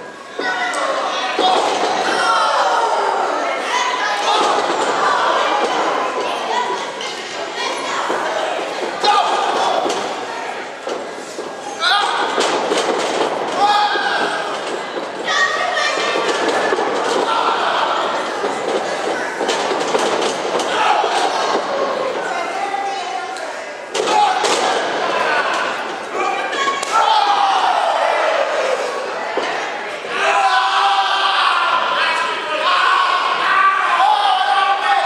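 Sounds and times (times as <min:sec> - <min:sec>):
crowd shouting: 0:00.0 - 0:07.0, 0:07.6 - 0:10.7, 0:13.4 - 0:19.8, 0:20.6 - 0:23.2, 0:24.0 - 0:35.0.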